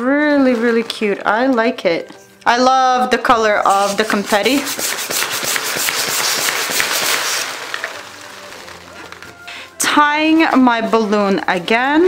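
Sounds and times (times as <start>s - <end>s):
balloon latex rubbing and confetti rattling: 3.4s - 12.0s.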